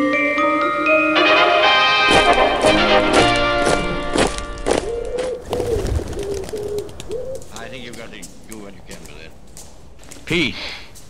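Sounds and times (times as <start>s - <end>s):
music of struck ringing notes: 0.0s - 4.8s
pigeon cooing: 4.7s - 7.9s.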